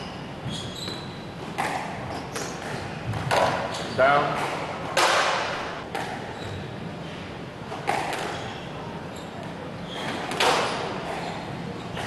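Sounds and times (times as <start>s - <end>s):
shoe squeak: 0.0s - 3.0s, 3.7s - 4.5s, 5.6s - 7.2s, 7.9s - 12.0s.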